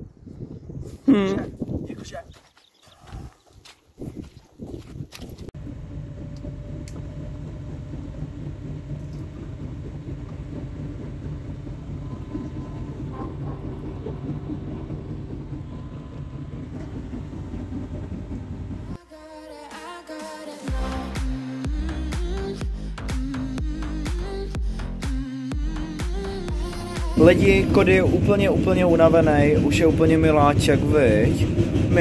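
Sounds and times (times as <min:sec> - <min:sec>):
train carriage rumbling on track: 0:05.6 - 0:19.0, 0:26.5 - 0:32.0.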